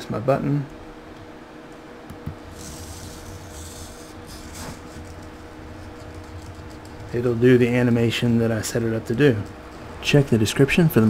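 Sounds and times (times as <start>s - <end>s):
steady hum: 0.0s - 11.0s
servo motors whirring: 2.5s - 5.2s.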